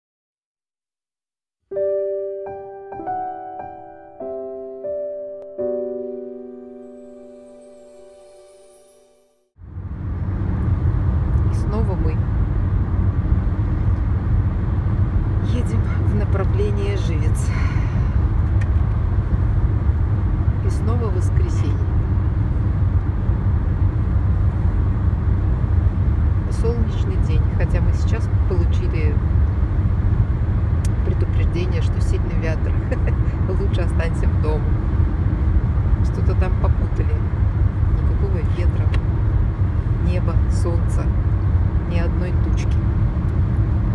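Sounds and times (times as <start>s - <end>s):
car cabin road rumble: 9.6s - 43.9s.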